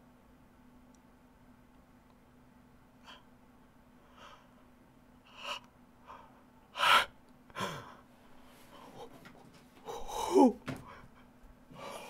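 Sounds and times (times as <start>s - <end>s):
man gasping: 5.5s - 8.1s, 8.7s - 12.0s.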